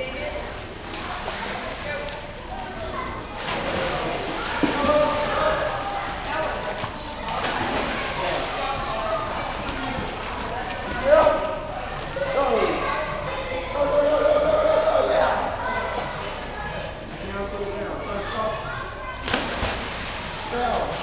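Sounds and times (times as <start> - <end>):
children calling and chattering: 0.0 - 21.0
swimmers splashing: 0.0 - 21.0.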